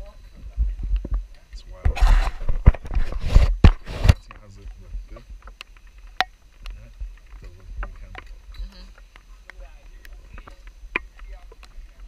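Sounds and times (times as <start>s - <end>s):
wind rumble on microphone: 0.0s - 6.0s.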